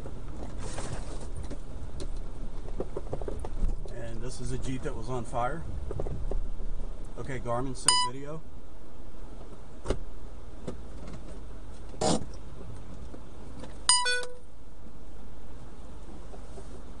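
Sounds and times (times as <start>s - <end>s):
dash cam electronic chime: 7.8s - 8.2s, 13.9s - 14.4s.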